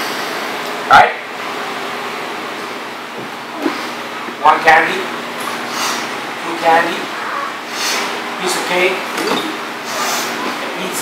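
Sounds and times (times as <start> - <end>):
hissing room noise: 0.0 - 11.0.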